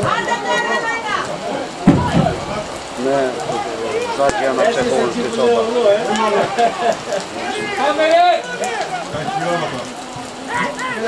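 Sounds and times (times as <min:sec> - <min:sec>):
crowd shouting: 0:00.0 - 0:11.0
light rain patter: 0:00.0 - 0:11.0.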